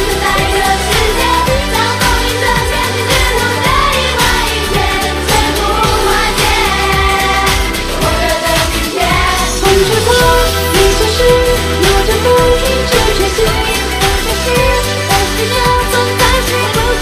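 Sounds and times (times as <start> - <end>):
backing track with drum beat: 0.0 - 17.0
group singing pop song: 0.0 - 17.0.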